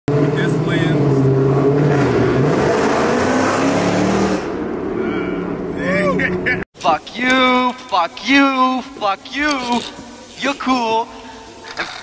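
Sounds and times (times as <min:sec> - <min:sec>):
car engine accelerating: 0:00.1 - 0:06.6
man talking: 0:00.2 - 0:01.2, 0:05.0 - 0:11.2
man laughing: 0:05.0 - 0:06.7, 0:11.7 - 0:12.0.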